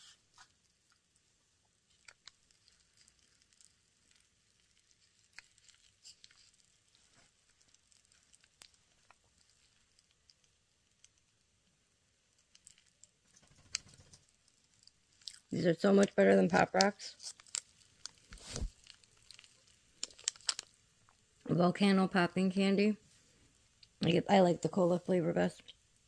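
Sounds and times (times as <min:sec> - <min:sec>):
popping candy crackling: 0:00.0 - 0:22.2.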